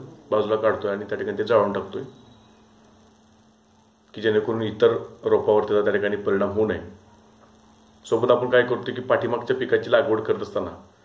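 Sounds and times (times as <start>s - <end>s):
faint mains hum: 0.0s - 11.0s
man lecturing: 8.0s - 10.9s.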